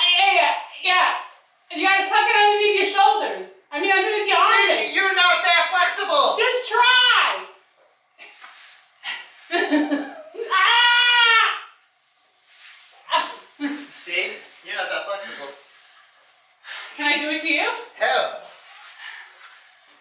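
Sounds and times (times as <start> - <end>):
person crying out: 10.4 - 11.7.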